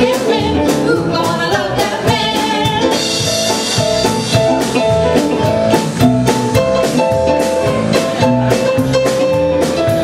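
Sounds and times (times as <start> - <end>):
upbeat pop-soul band: 0.0 - 10.0.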